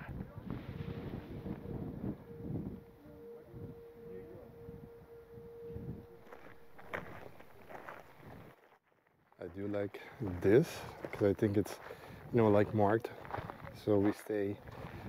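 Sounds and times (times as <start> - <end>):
wind buffeting microphone: 0.0 - 8.5, 10.2 - 15.0
faint steady hum: 0.5 - 8.5.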